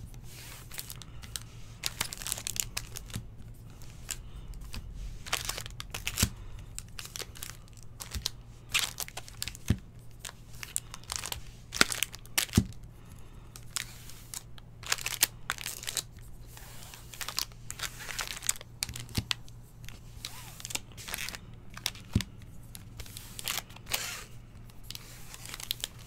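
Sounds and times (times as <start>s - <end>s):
foil wrappers crinkling: 0.2s - 26.0s.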